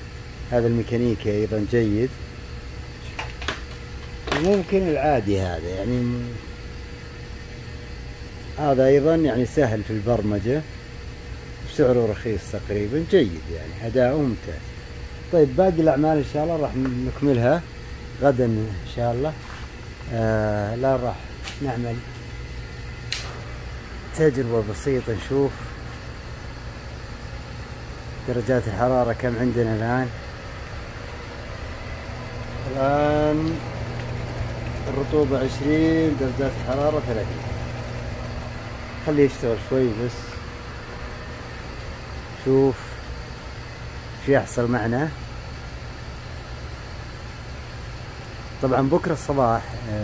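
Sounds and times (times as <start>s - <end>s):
low mechanical hum: 0.0s - 50.0s.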